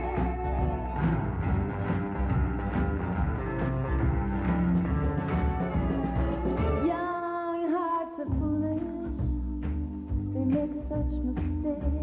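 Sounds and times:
steady drum beat: 0.0s - 7.0s
bass guitar: 0.0s - 7.2s, 8.2s - 12.0s
electric guitar lead: 0.0s - 11.3s.

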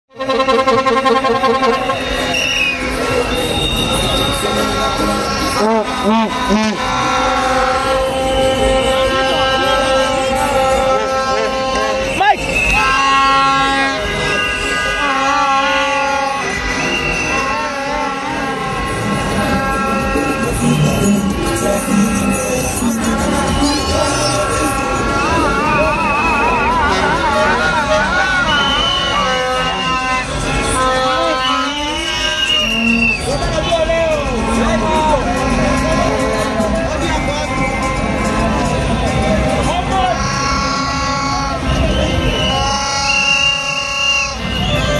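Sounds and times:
loud music: 0.1s - 32.6s, 33.6s - 43.4s
long horn tones: 0.1s - 33.3s
vehicles arriving: 0.1s - 44.9s
voices: 0.2s - 44.9s
voices chanting oh: 34.4s - 44.9s.

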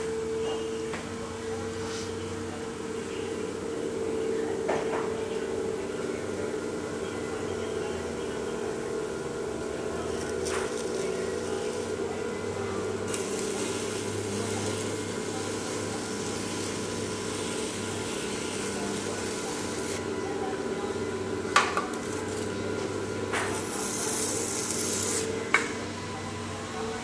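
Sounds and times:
potter's wheel motor hum: 0.0s - 27.0s.

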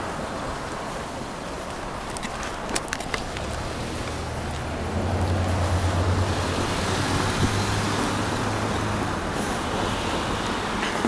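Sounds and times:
road noise: 0.0s - 11.0s
vehicle engine drone: 2.0s - 11.0s.

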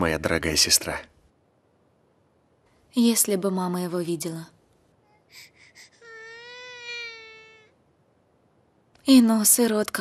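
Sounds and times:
baby whimpering and crying: 5.1s - 7.8s.

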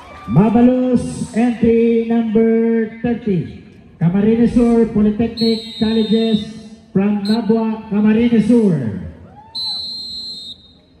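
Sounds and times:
high-pitched whistle blast: 5.3s - 6.5s, 9.5s - 10.9s.

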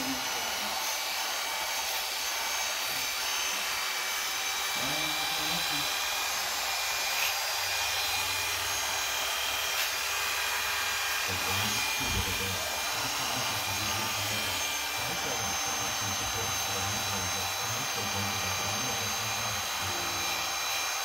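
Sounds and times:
electric hair clipper running: 0.0s - 21.0s.

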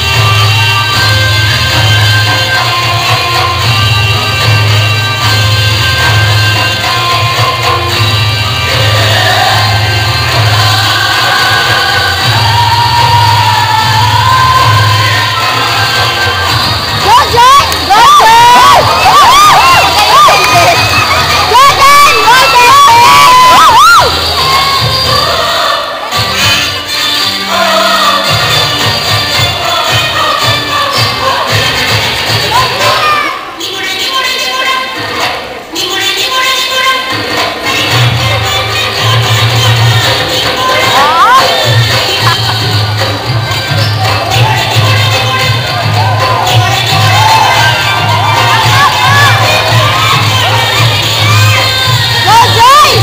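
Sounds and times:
dance song over sound system: 0.0s - 53.0s
crowd cheering: 10.7s - 26.2s, 40.4s - 53.0s
high-pitched shrieks and whoops: 17.1s - 25.2s.

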